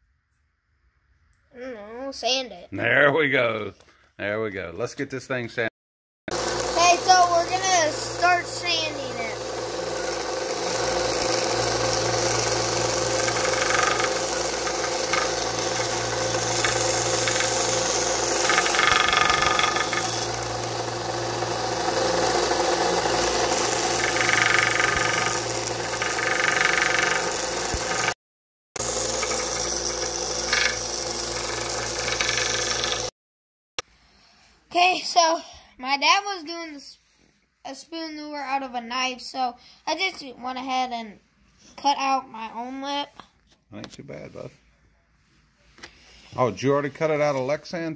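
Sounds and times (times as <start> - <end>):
belt sander humming: 6.3 - 28.2, 28.8 - 33.1
wood rasping against sanding belt: 6.4 - 28.2, 28.8 - 33.1.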